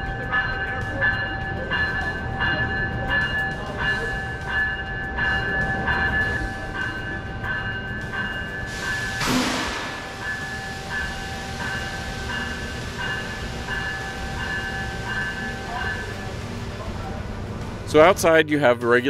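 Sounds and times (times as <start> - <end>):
train bell ringing: 0.0 - 19.0
hissing burst: 8.7 - 14.4.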